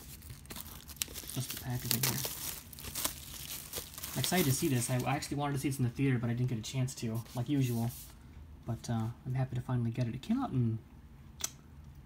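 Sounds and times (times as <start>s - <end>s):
plastic shrink wrap crinkling: 0.0s - 5.8s.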